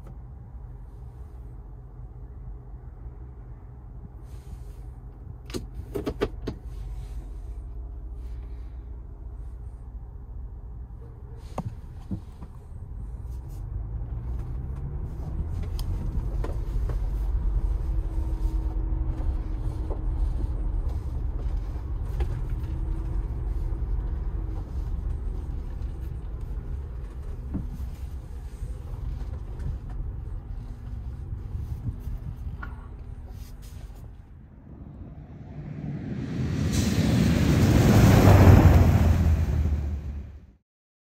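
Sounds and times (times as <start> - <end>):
engine and road rumble: 0.0 - 40.6.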